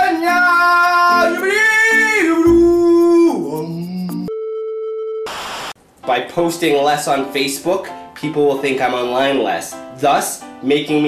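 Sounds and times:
person singing long notes: 0.2s - 4.3s
static hiss: 5.3s - 5.8s.

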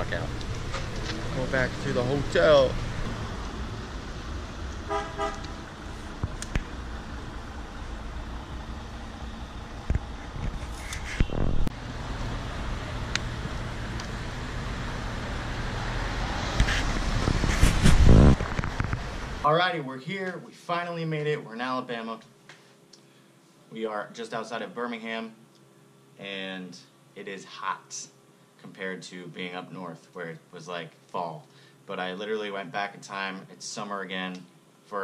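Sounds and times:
street traffic: 0.0s - 19.4s
car horn toot: 4.8s - 5.6s.

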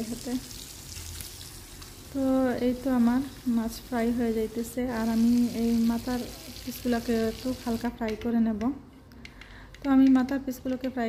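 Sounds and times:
fish sizzling in oil: 0.0s - 7.8s.

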